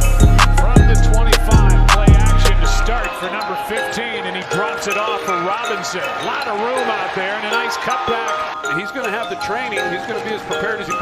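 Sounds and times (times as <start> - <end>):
music track: 0.0 - 11.0.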